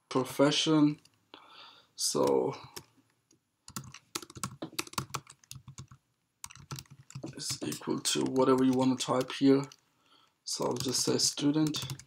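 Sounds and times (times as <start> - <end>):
typing on computer keyboard: 3.7 - 9.8, 10.6 - 12.0.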